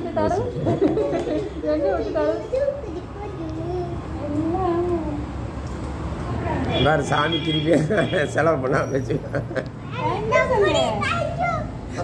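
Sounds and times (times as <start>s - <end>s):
children chattering: 0.0s - 5.3s, 9.7s - 12.0s
children's high-pitched calls: 10.0s - 12.0s.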